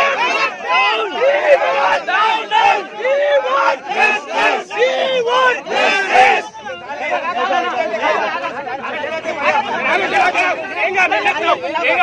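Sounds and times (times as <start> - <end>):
crowd shouting and arguing: 0.0 - 12.0.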